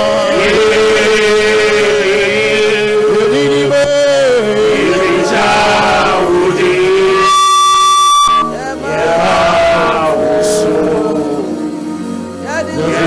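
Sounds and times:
steady held tone: 0.0 - 13.0.

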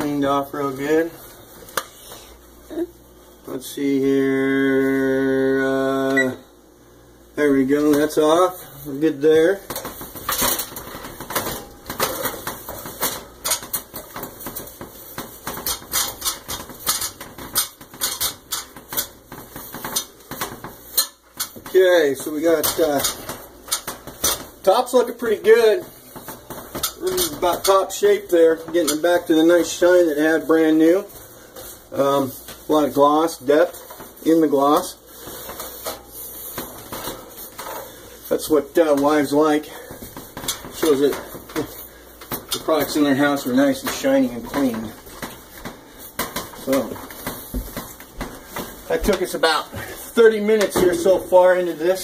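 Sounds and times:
cloth rubbing on stovetop: 0.0 - 3.5, 7.8 - 52.0.

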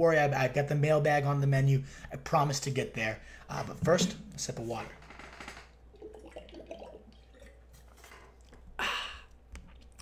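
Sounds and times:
water bottle handled: 3.6 - 4.8
sips and swallows: 6.0 - 10.0.

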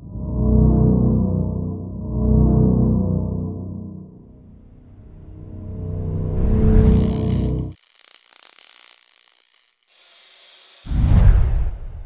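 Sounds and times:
rapid mechanical ticking: 6.8 - 10.9.

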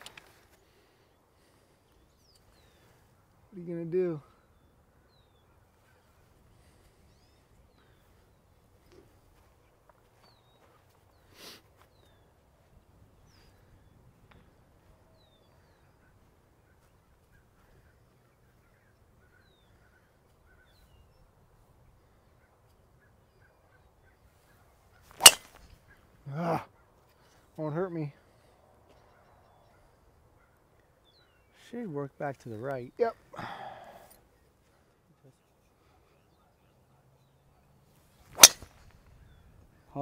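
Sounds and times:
faint bird chirps: 1.0 - 3.4, 4.0 - 27.5.

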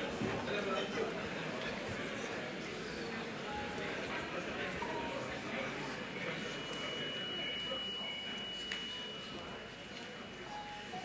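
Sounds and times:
audience room noise: 0.0 - 11.0.

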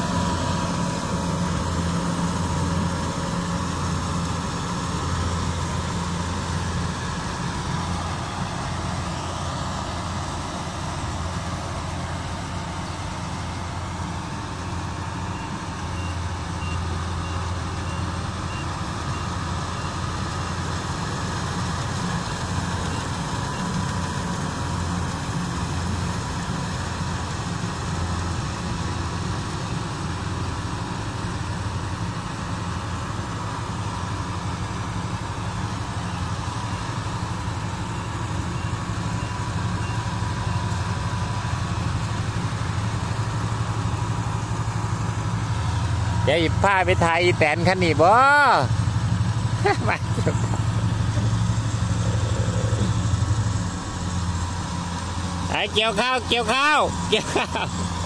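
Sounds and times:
diesel engine hum: 0.0 - 58.0.

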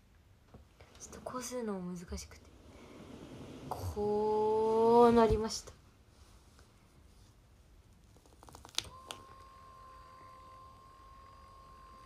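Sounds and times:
massage motor faint whine: 0.5 - 5.6, 8.6 - 12.0.

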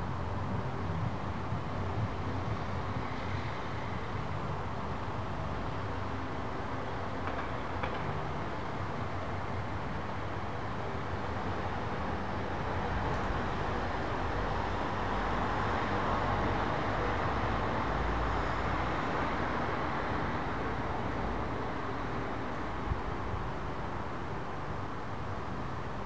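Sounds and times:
distant city noise: 0.0 - 26.0.

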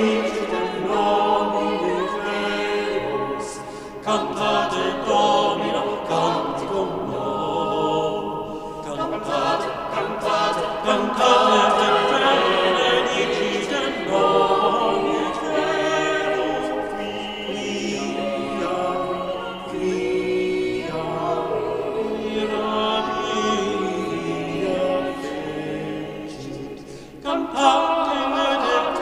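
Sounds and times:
church choir singing in parts: 0.0 - 29.0.

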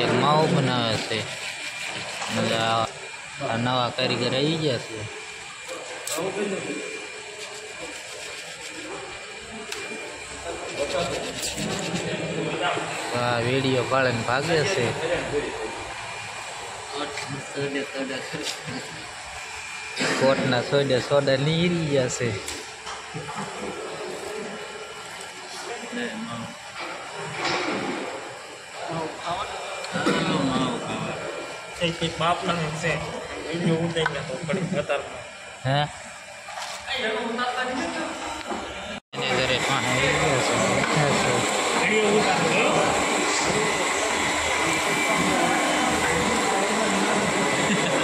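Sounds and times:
workshop machines running: 0.0 - 48.0.

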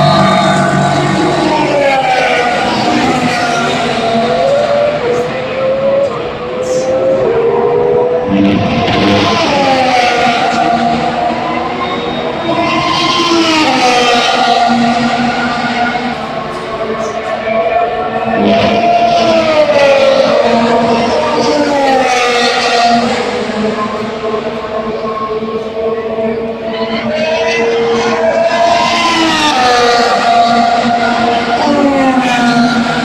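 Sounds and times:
racing car engines revving and passing: 0.0 - 33.0.

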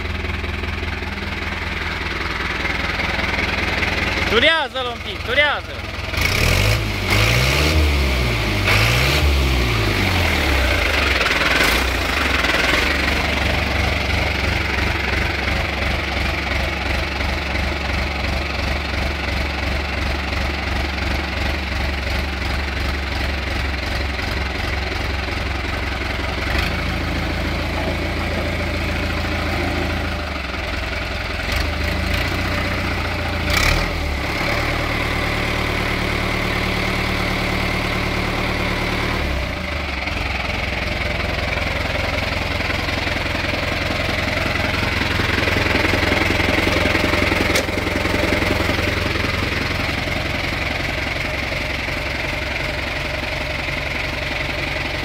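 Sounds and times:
tractor diesel engine idling: 0.0 - 55.0.

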